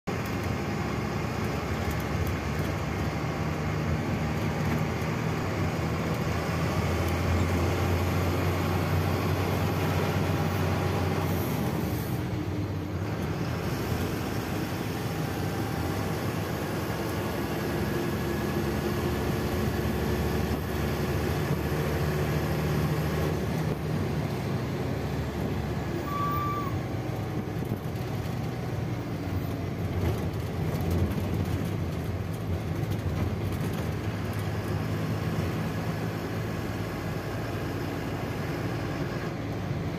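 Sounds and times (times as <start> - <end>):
heavy vehicle engine: 0.0 - 39.9
road noise: 0.0 - 39.9
short tone: 25.9 - 26.9.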